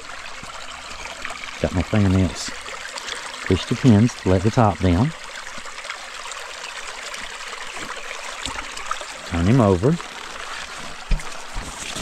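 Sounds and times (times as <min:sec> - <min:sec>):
rocky creek trickling: 0:00.0 - 0:12.0.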